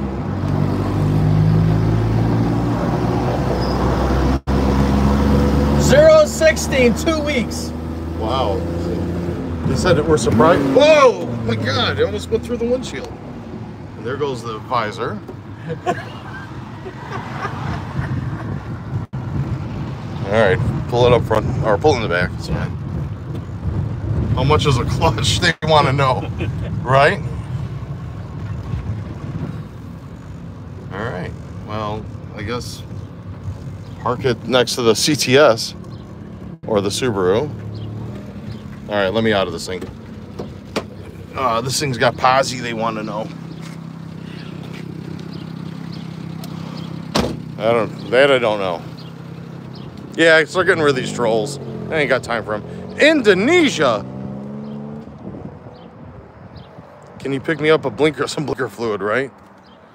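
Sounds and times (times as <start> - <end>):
truck engine and road noise: 0.0 - 59.9.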